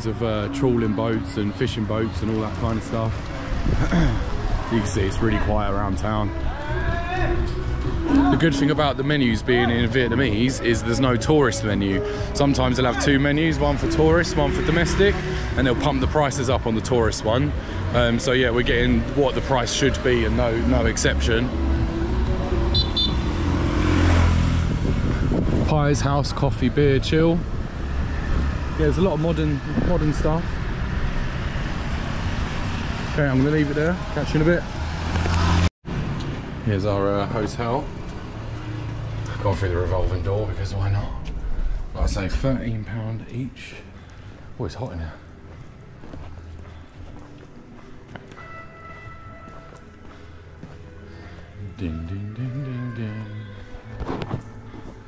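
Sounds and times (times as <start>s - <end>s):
faint background music: 0.0s - 24.8s, 25.6s - 31.5s, 36.6s - 55.0s
motor vehicle passing: 16.6s - 42.5s
footsteps on stone tile floor: 44.1s - 51.5s, 53.2s - 55.0s.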